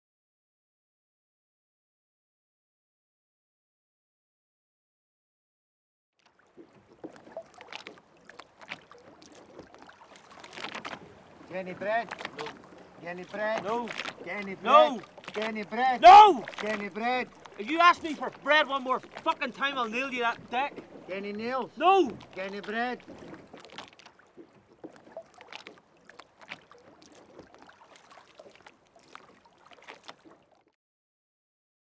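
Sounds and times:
open water ambience: 0:06.2 - 0:30.8
water lapping against boat hull: 0:06.2 - 0:30.8
water splashes: 0:06.2 - 0:30.8.

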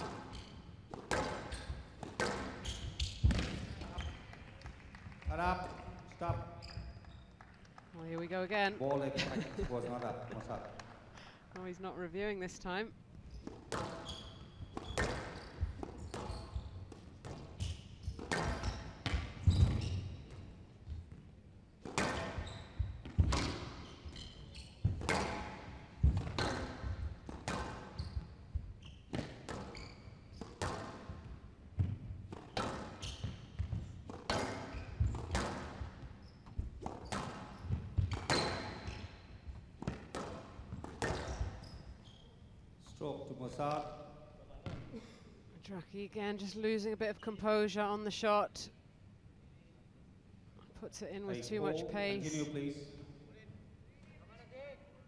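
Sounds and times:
squash ball hits: 0:00.9 - 0:04.1, 0:13.5 - 0:20.4, 0:21.8 - 0:23.8, 0:24.8 - 0:27.9, 0:29.1 - 0:39.0, 0:39.8 - 0:41.6.

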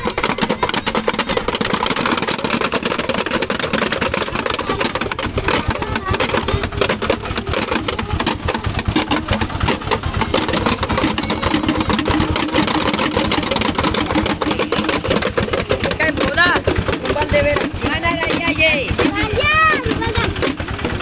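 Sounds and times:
whirling bottle toys buzzing: 0:00.0 - 0:21.0.

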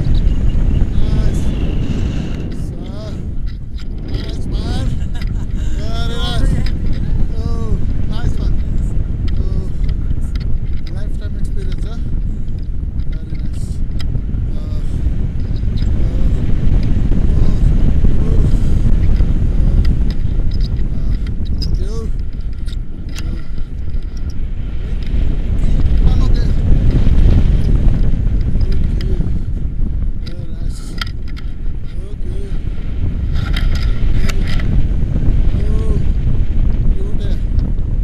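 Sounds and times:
strong wind over microphone: 0:00.0 - 0:38.0.

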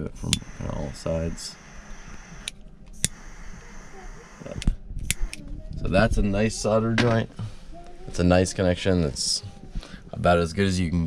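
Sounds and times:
lighter flame hiss: 0:00.2 - 0:05.4
lighter clicks: 0:00.3 - 0:00.5, 0:01.8 - 0:03.7, 0:04.3 - 0:05.4.

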